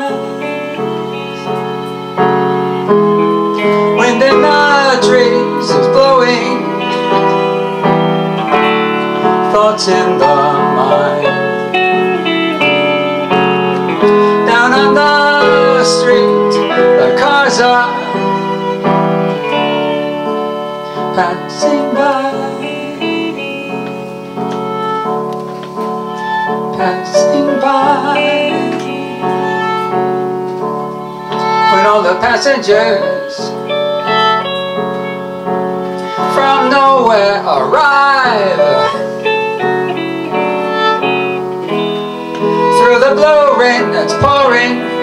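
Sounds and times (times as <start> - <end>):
electric guitar held notes: 0.0 - 45.0
live band playing chords: 0.0 - 45.0.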